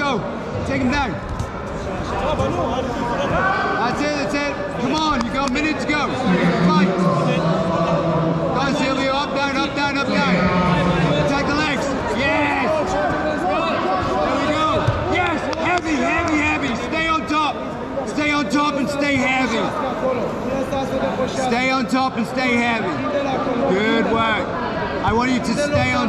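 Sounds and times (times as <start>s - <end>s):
people talking and shouting: 0.0s - 26.0s.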